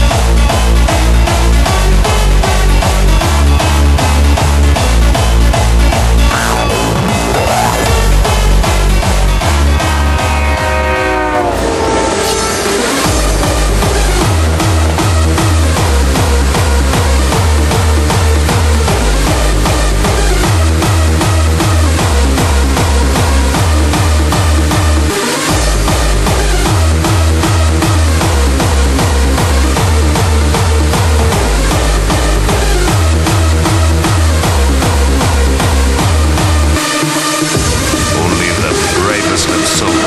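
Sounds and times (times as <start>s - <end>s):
synth layers: 6.3s - 8.4s, 9.0s - 17.7s
distorted kick drum: 13.1s - 21.5s.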